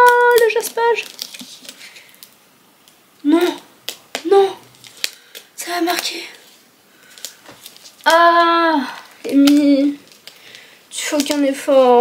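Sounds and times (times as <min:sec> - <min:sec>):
plastic shrink-wrap crinkling: 0:00.0 - 0:12.0.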